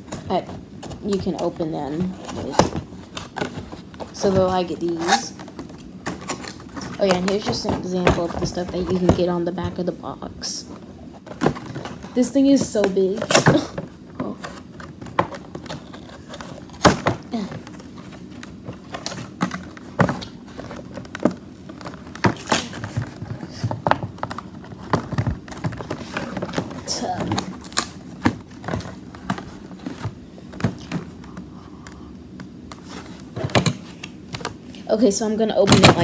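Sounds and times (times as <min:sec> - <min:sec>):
cardboard packaging rustle: 0:00.0 - 0:10.0, 0:10.6 - 0:31.6.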